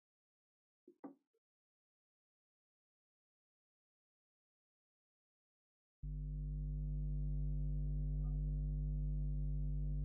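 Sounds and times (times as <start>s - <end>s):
low electronic hum: 6.1s - 10.0s.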